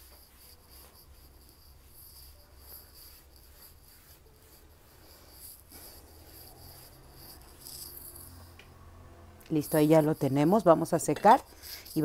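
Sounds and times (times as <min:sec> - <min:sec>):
paintbrush rubbing on board: 0:00.0 - 0:08.6, 0:09.5 - 0:12.0.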